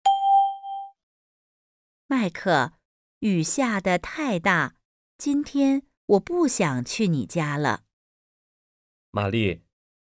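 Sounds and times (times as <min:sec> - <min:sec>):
chime ding: 0:00.0 - 0:01.0.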